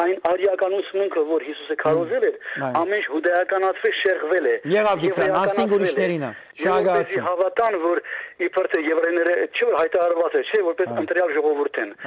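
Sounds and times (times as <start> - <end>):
person talking: 1.8 - 2.9, 4.6 - 7.3, 10.8 - 11.3.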